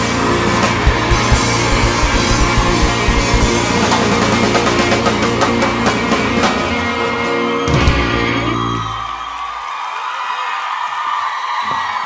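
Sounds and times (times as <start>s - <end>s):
kick drum hits: 0.8s - 3.6s.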